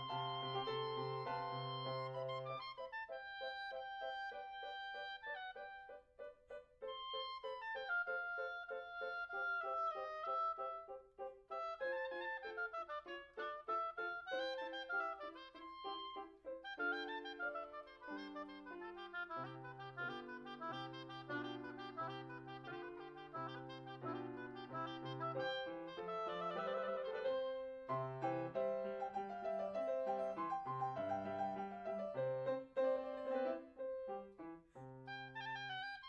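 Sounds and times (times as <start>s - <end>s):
grand piano accompaniment: 0.0s - 36.0s
oboe melody: 0.0s - 36.0s.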